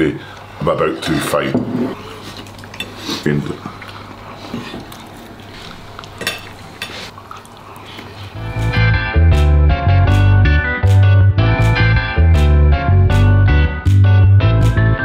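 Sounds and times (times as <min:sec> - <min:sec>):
cutlery clinking on plates: 0:06.2 - 0:07.1
guitar tune: 0:08.4 - 0:15.0.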